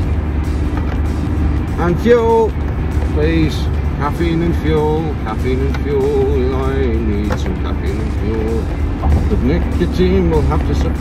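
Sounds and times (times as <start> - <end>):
truck engine and road rumble: 0.0 - 11.0
man singing: 4.0 - 8.7.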